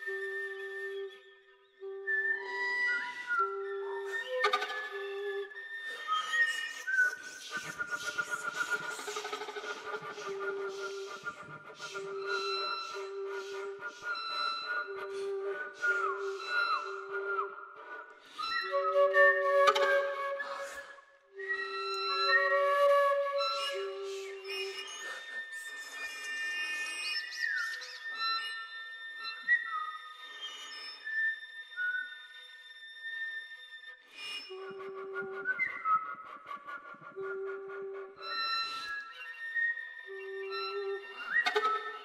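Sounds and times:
faint bowed violin: 0.0 - 42.0
flute whistle tones: 0.0 - 42.0
person whispering shee noises: 7.3 - 13.8.

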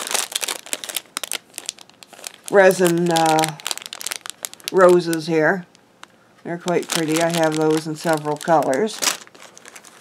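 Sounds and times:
plastic packet crinkling: 0.0 - 10.0.

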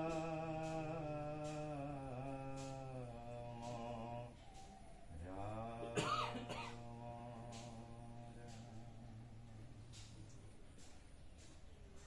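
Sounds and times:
congregation chanting: 0.0 - 10.3
person coughing: 6.0 - 6.8.

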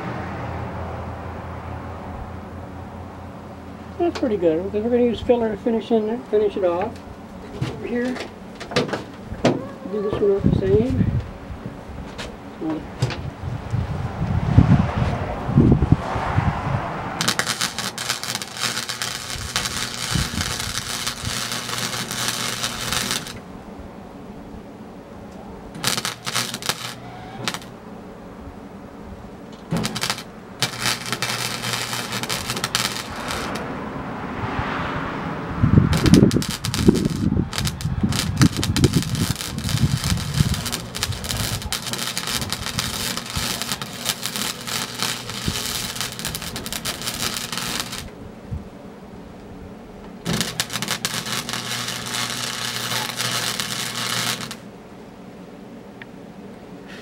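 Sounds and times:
wire-feed welder crackling: 17.2 - 23.5, 25.7 - 27.8, 29.5 - 33.7, 35.9 - 48.2, 50.2 - 54.7.

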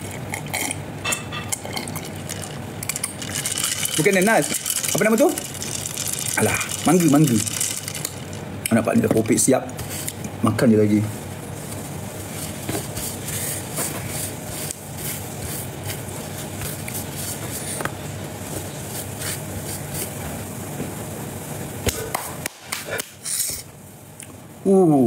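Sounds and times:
steady hiss: 3.3 - 25.0.

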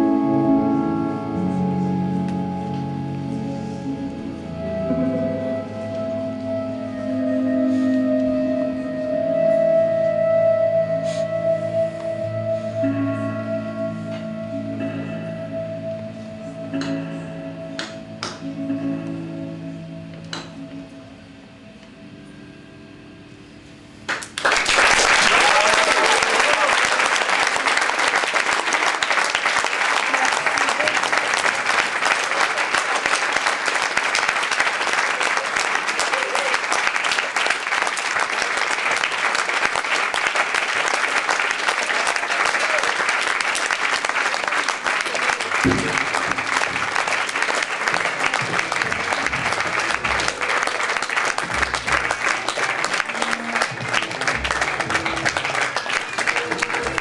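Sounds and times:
audience applause: 24.1 - 57.0
crowd cheering: 24.1 - 57.0.

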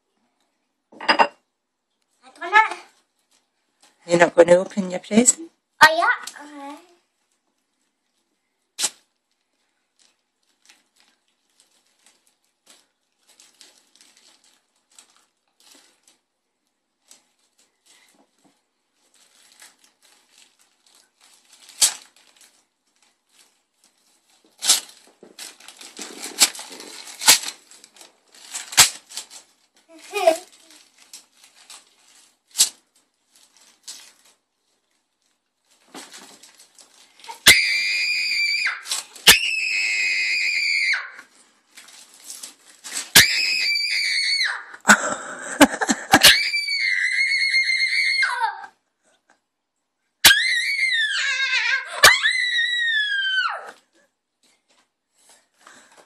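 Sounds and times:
wrapping paper crackling and tearing: 2.4 - 4.0, 5.9 - 48.6, 50.2 - 53.9
girl shrieking with delight: 37.3 - 41.2, 43.2 - 44.8, 46.1 - 48.7, 50.2 - 53.8.

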